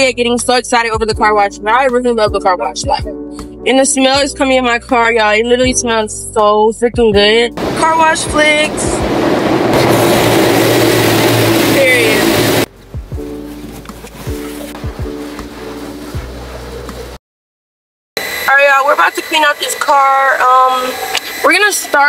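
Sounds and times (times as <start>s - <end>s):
quiet music: 0.0s - 9.0s, 11.8s - 17.2s
car wash water spray: 7.6s - 12.7s, 13.5s - 17.2s.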